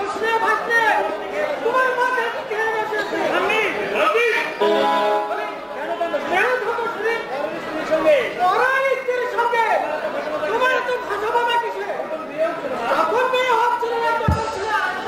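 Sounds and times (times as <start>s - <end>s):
stage dialogue over loudspeakers: 0.0s - 15.0s.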